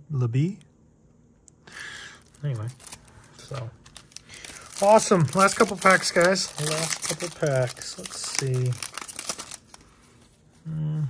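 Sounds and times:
foil wrapper crinkling: 0:02.0 - 0:10.2.

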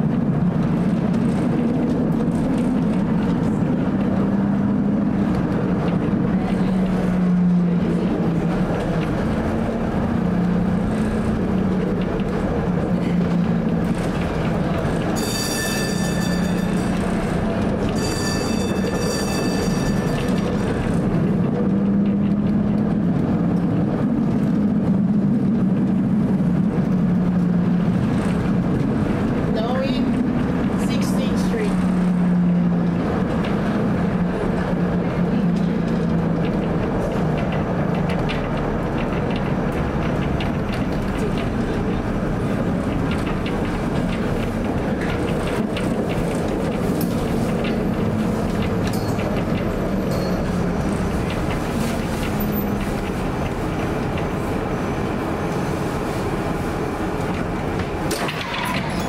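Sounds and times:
streetcar motor hum: 0:00.0 - 0:59.0
high wheel squeal: 0:15.1 - 0:20.8, 0:58.3 - 0:59.0.

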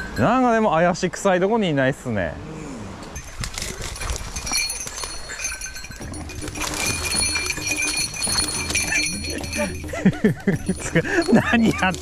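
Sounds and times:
dry grass and brush crackling: 0:03.2 - 0:12.0.

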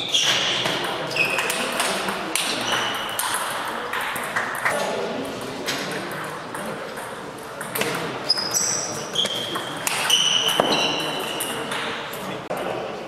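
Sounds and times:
shoes squeaking on floor: 0:00.0 - 0:01.6, 0:08.2 - 0:11.7.

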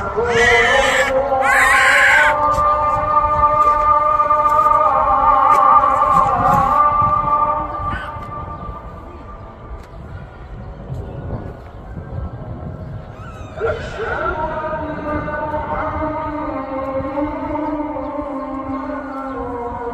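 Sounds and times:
person chanting long wavering notes: 0:00.0 - 0:09.7, 0:13.6 - 0:19.9.

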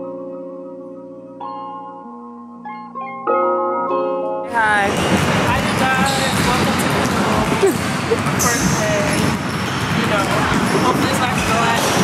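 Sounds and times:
busy indoor background noise: 0:04.5 - 0:12.0
unclear voices: 0:04.5 - 0:12.0.

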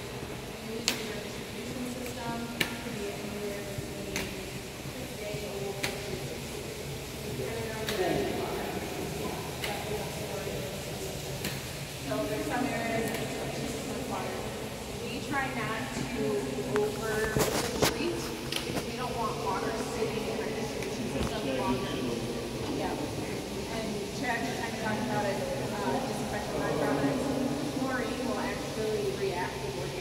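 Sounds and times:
people talking: 0:00.0 - 0:30.0.

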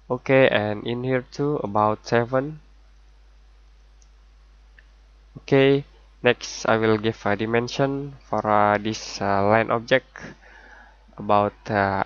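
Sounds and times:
steady low hum: 0:00.0 - 0:12.0
faint computer clicks: 0:03.7 - 0:04.9.

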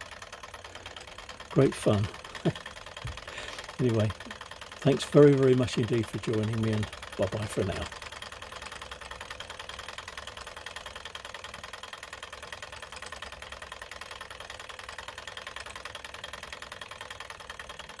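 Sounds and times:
model engine clattering: 0:00.0 - 0:18.0.

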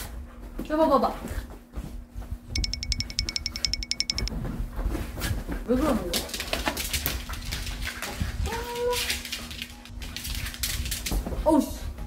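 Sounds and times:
high beeping ticks: 0:02.6 - 0:04.3.

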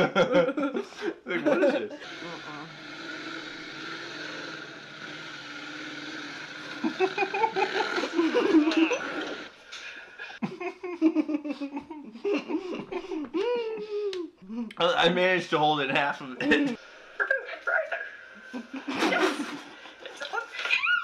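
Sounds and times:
person laughing: 0:00.0 - 0:02.4, 0:06.7 - 0:09.4, 0:10.2 - 0:14.7, 0:16.4 - 0:16.8
people talking: 0:01.3 - 0:02.7, 0:14.5 - 0:18.2, 0:19.0 - 0:21.0.

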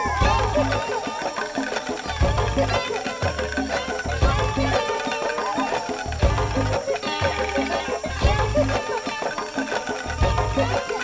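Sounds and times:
upbeat instrumental music: 0:00.0 - 0:11.0.

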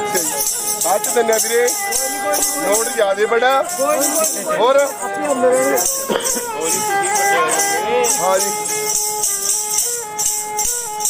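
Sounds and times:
shaken jingling rattle: 0:00.0 - 0:11.0.

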